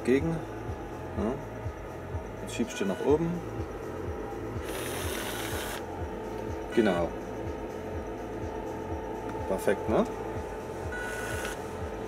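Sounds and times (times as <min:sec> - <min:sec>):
small geared electric motor running: 0:04.6 - 0:05.9.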